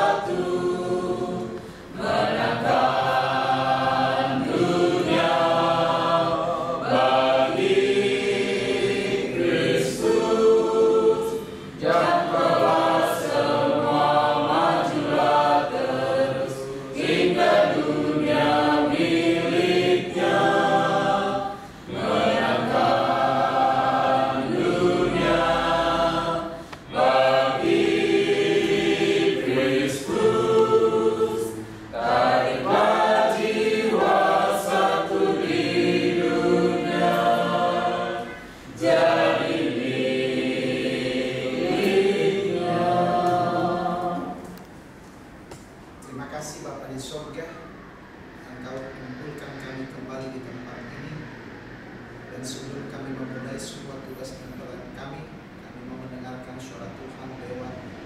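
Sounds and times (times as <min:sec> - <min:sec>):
group singing a hymn: 0:00.0 - 0:45.7.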